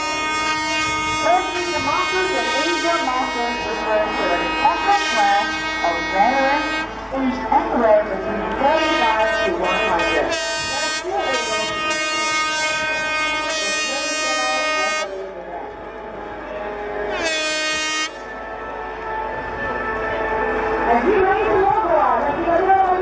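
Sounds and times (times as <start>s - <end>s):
air horn blasts: 0.0s - 7.0s, 8.6s - 15.2s, 17.1s - 18.4s
background music: 0.0s - 23.0s.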